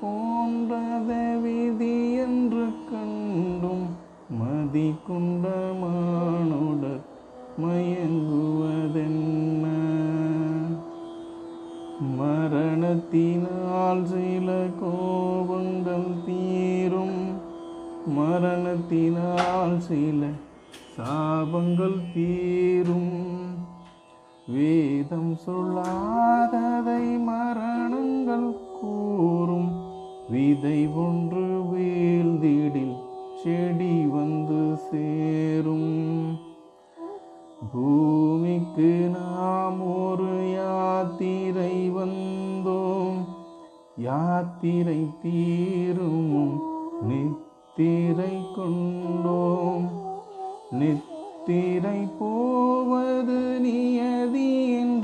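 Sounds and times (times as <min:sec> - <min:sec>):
person singing devotional song: 0:00.0 - 0:55.0.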